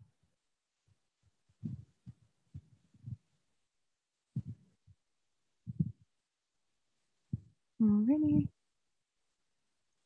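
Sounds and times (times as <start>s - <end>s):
soft low thumps: 0.2s - 3.4s, 4.3s - 6.2s, 7.2s - 8.6s.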